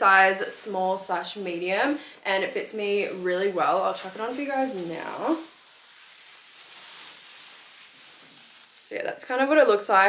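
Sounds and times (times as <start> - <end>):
jacket rustling: 0.8 - 10.0.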